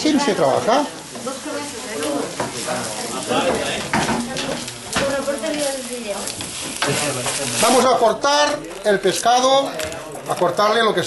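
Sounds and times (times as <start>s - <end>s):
greens sizzling in frying pan: 0.0s - 10.6s
wooden spoon stirring: 0.2s - 10.6s.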